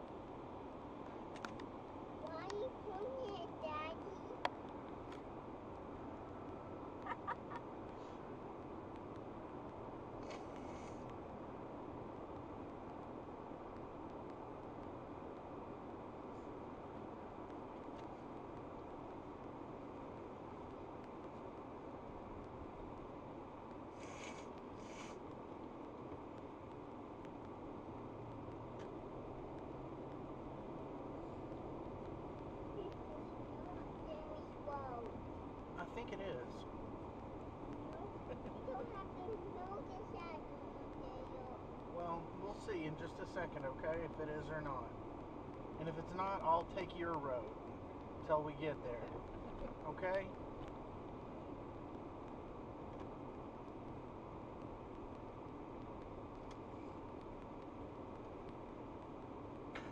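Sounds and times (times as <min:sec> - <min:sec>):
car road and engine noise: 0:00.0 - 0:59.9
brief hiss: 0:10.2 - 0:11.1, 0:24.0 - 0:25.2.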